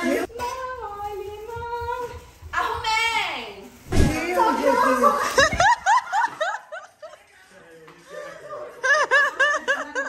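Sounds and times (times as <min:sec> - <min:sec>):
women laughing: 0:04.5 - 0:07.3, 0:08.2 - 0:10.0.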